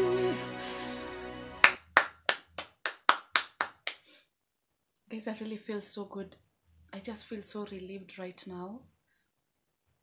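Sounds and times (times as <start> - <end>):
sung ballad: 0.0 - 1.6
person clapping hands: 1.6 - 4.1.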